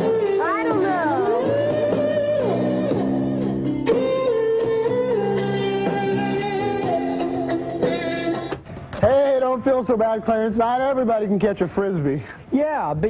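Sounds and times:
electric guitar rock music: 0.0s - 8.6s.

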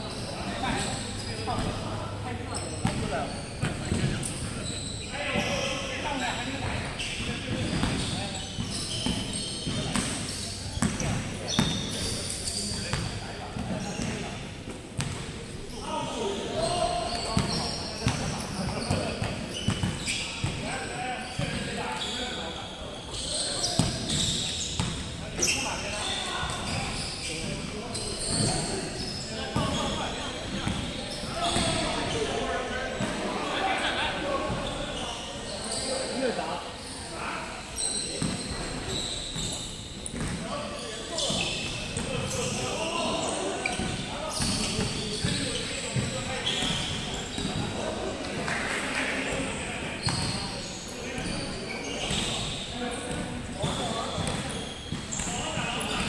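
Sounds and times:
players' voices: 0.0s - 56.0s.

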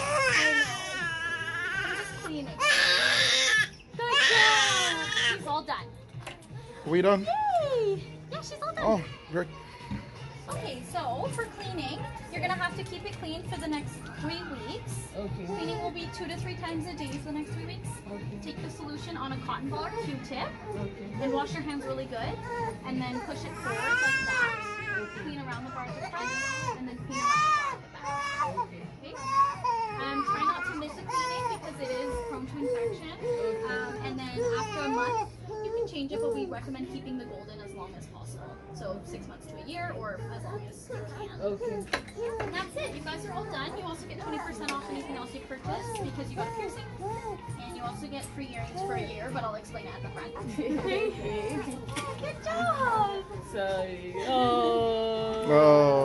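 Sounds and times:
baby crying and screaming: 0.0s - 5.4s, 22.4s - 35.8s.

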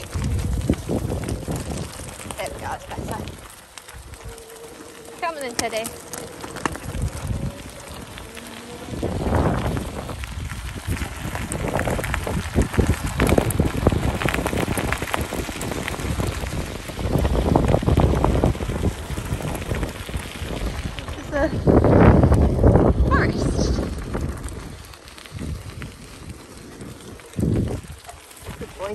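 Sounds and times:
bike tyres rolling on gravel: 0.0s - 28.9s
wind rumble on microphone: 0.0s - 28.9s.

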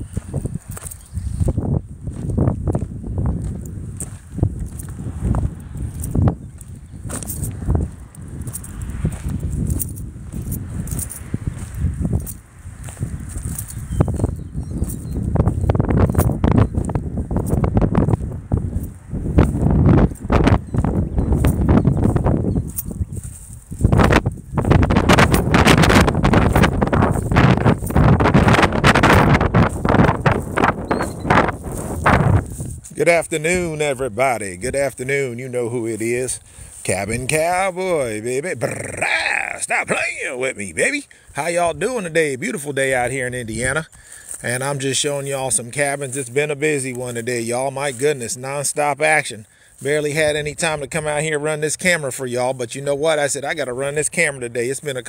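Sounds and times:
wind rumbling on microphone: 0.0s - 49.2s
footsteps crunching on gravel: 0.0s - 51.0s.

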